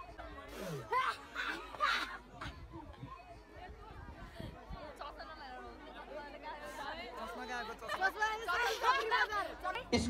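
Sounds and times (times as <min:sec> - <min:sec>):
young people chattering: 0:00.0 - 0:10.0.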